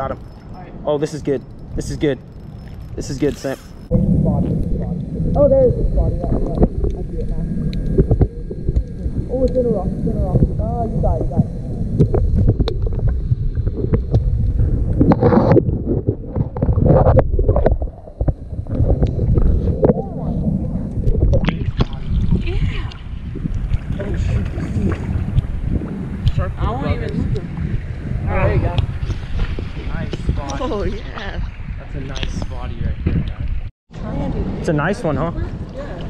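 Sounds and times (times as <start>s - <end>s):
wind rumble on microphone: 0.0s - 36.0s
water splashing against rocks: 21.0s - 26.5s.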